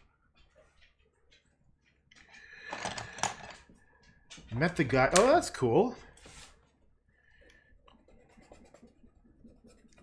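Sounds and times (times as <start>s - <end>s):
paintbrush scratching on paper: 8.0s - 10.0s.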